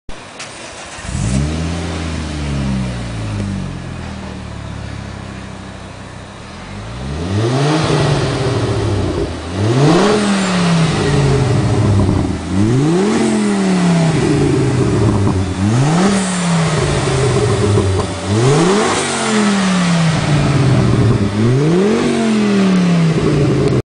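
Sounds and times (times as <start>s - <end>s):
car engine idling: 0.1s - 23.8s
car engine revving: 0.2s - 23.8s.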